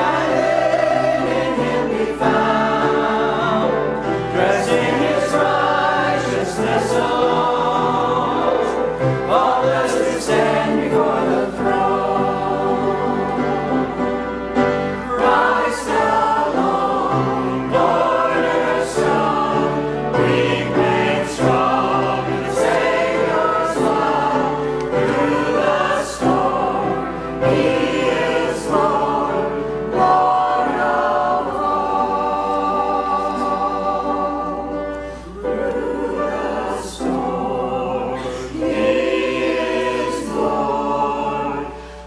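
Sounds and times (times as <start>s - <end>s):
choir singing: 0.0s - 42.0s.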